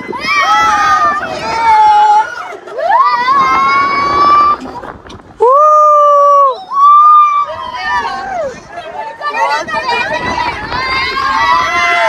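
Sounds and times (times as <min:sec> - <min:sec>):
riders screaming: 0:00.1 - 0:04.8.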